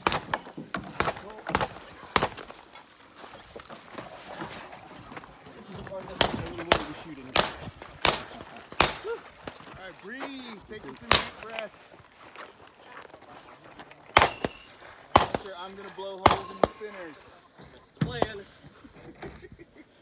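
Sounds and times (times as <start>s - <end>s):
gunshots: 0.0s - 2.5s, 6.1s - 9.2s, 11.1s - 11.6s, 14.1s - 16.8s.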